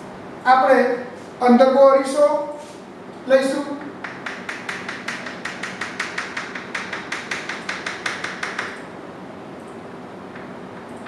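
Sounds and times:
chalk tapping on blackboard: 3.8s - 8.8s.

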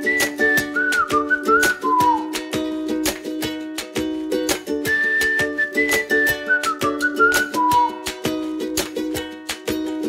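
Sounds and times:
whistled melody: 0.0s - 2.9s, 4.5s - 8.8s
light percussive beat: 0.0s - 10.0s
plucked-string chords: 0.0s - 10.0s.

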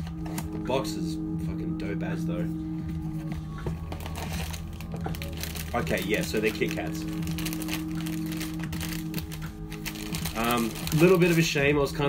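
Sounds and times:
background music: 0.0s - 12.0s
tissue paper rustling: 3.1s - 11.6s.

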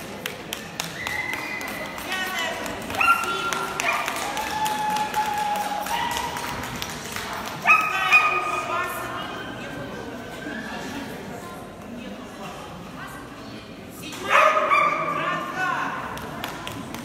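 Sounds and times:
murmur of voices in a hall: 0.0s - 17.0s.

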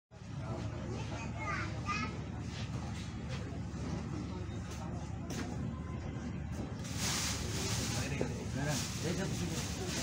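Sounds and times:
passenger chatter: 0.1s - 10.0s
children's voices: 0.8s - 2.4s.

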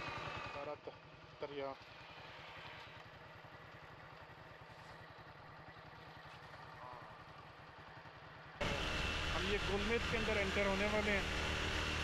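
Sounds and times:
motorcycle engine rumbling: 0.0s - 12.0s.

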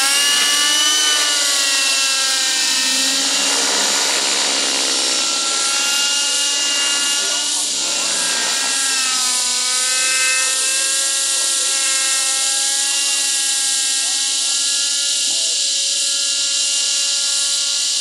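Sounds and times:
model helicopter engine and rotors: 0.0s - 18.0s.

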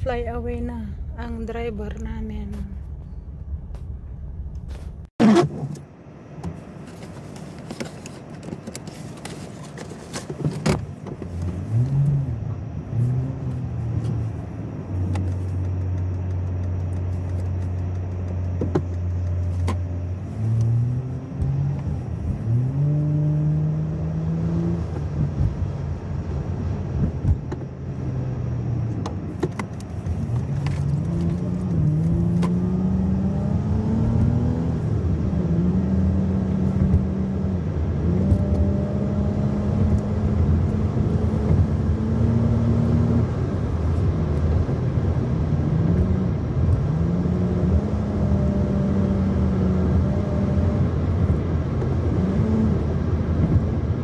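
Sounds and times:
car engine from inside cabin: 0.0s - 54.0s.

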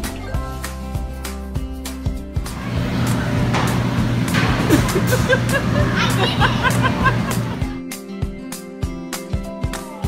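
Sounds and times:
background music with steady beat: 0.0s - 10.0s
electric air blower humming: 2.5s - 7.7s.

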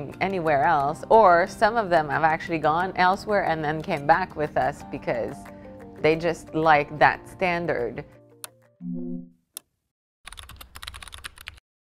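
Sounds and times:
background music: 0.0s - 9.3s
keyboard typing clicks: 10.3s - 11.6s.

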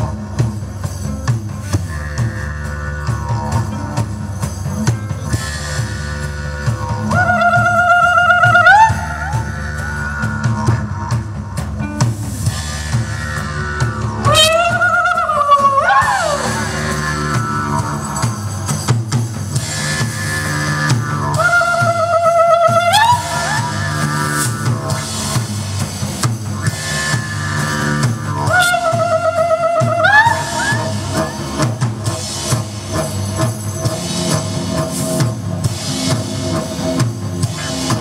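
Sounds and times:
droning didgeridoo: 0.0s - 38.0s
drum kit beat: 0.0s - 38.0s
wavering high note: 20.0s - 25.4s.

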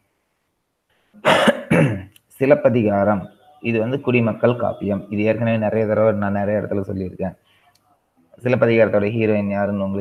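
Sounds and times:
man coughing: 1.2s - 2.1s.

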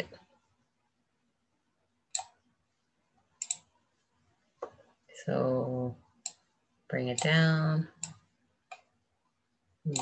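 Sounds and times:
computer mouse clicks: 2.1s - 2.4s, 3.4s - 3.7s, 6.2s - 6.4s, 7.1s - 7.4s, 8.0s - 8.9s.

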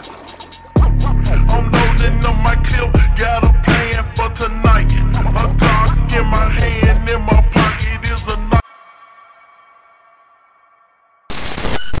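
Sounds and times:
loud noisy burst: 11.3s - 12.0s.

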